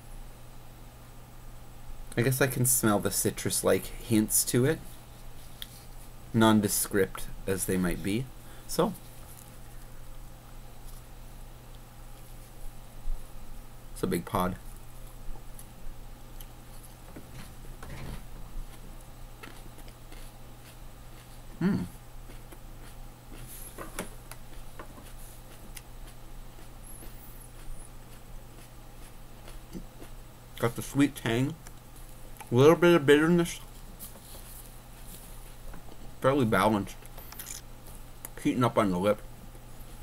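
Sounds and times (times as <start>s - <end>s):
low steady hum: 0.0s - 40.0s
faint chewing clicks: 16.3s - 16.6s.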